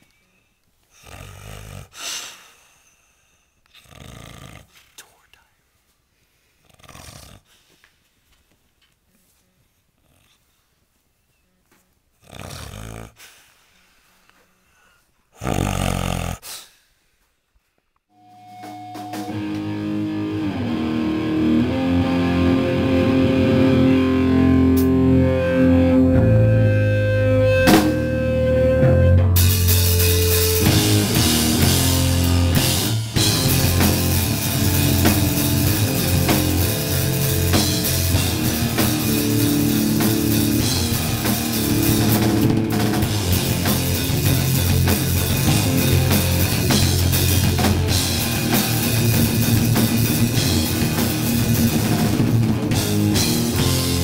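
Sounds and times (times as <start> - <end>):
brief loud noise: 18.1 - 20.1
distorted bass guitar notes: 18.2 - 54.0
drums: 18.2 - 54.0
hardcore band playing live: 18.2 - 54.0.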